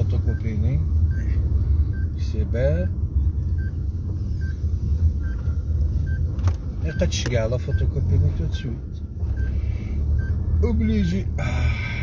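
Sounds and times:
car cabin low rumble: 0.0s - 12.0s.

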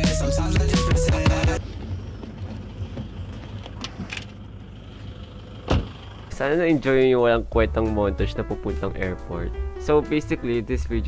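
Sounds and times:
low outdoor rumble: 1.6s - 9.9s.

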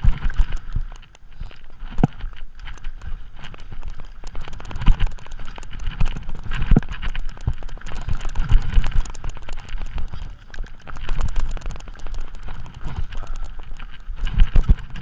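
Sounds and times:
mountain bike rattling: 0.0s - 15.0s
wheels thumping on rocks: 0.0s - 15.0s.

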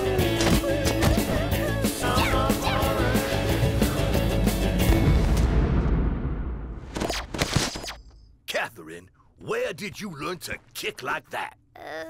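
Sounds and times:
sharp hits and swishes: 6.8s - 8.2s.

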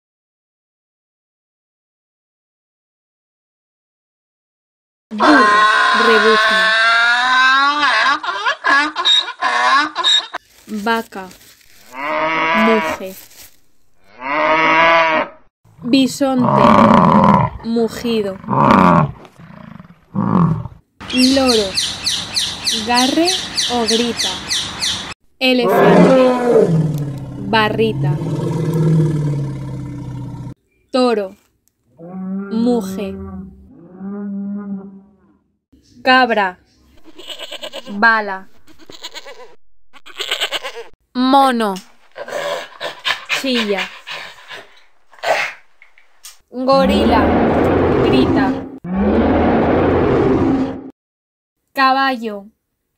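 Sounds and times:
bull mooing: 5.2s - 7.7s, 16.4s - 17.6s, 18.5s - 20.7s, 25.6s - 30.6s, 46.7s - 50.8s
donkey braying: 5.2s - 10.4s, 37.0s - 40.9s.

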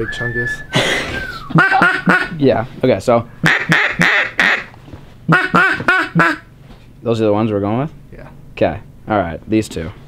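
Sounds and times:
wooden duck call quacks: 1.6s - 2.4s, 3.4s - 4.7s, 5.3s - 6.5s.

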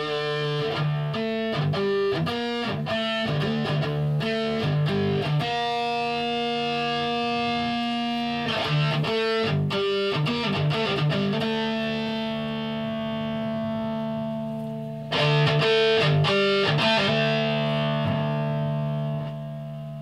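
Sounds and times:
electric guitar chord stabs: 0.0s - 20.0s.

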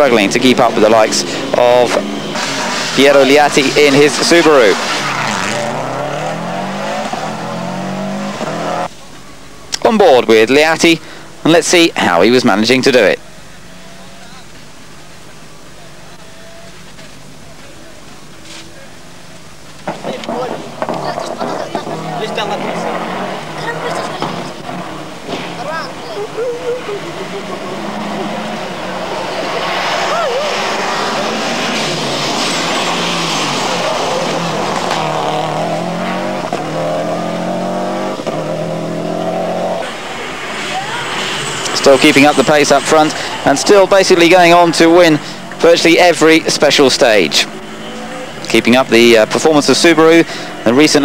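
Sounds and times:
rally car engine revving: 0.0s - 8.9s, 19.8s - 51.0s.

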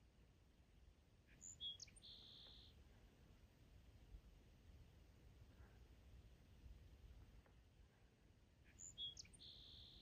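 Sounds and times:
bird chirping: 1.3s - 2.8s, 8.6s - 10.0s
faint low rumble: 2.0s - 8.7s.

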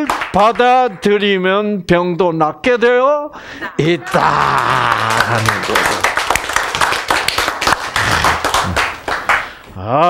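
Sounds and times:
group hand clapping: 0.0s - 0.9s, 4.1s - 9.7s.

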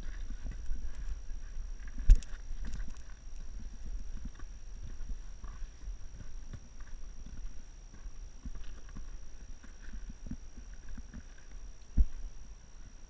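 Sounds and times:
footsteps on rock and grit: 0.0s - 12.3s
wind: 0.0s - 13.0s
camera handling rumble: 1.8s - 5.6s.

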